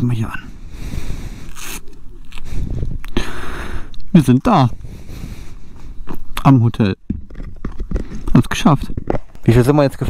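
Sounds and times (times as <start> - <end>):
riding gear rustling and scraping: 4.2 - 10.0.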